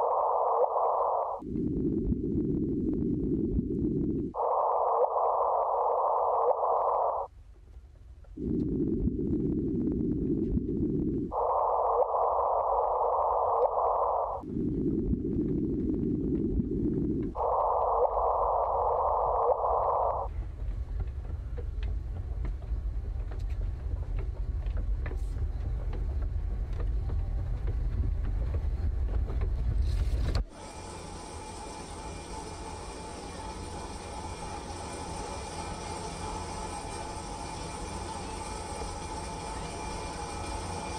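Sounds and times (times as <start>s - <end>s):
high electronic hiss: 0.0s - 1.4s, 4.3s - 7.3s, 11.2s - 14.4s, 17.3s - 20.3s
faint steady tone: 0.0s - 7.3s, 8.3s - 20.3s
low electronic rushing noise: 0.0s - 7.3s, 8.3s - 20.4s
faint crackles and clicks: 0.0s - 30.5s
low rumble: 0.0s - 30.5s.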